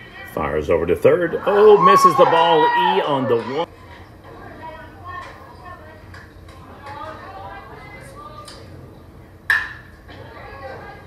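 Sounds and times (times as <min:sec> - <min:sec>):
chatter of spectators: 0:00.0 - 0:11.0.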